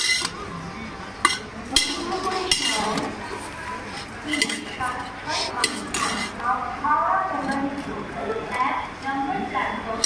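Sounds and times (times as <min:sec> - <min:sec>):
metal spoon clinking on tins: 0:00.0 - 0:00.4, 0:01.2 - 0:03.1, 0:04.3 - 0:06.3.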